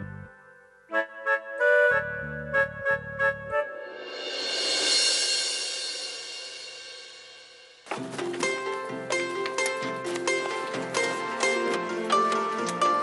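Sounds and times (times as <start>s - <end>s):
cymbal swell: 3.9s - 7.8s.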